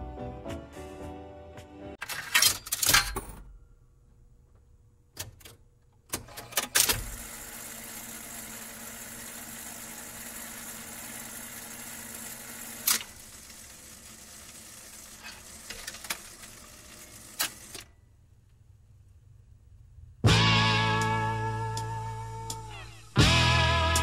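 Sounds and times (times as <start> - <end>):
jukebox mechanical clicks: 5.1 - 7.4, 12.8 - 13.2, 15.1 - 17.9.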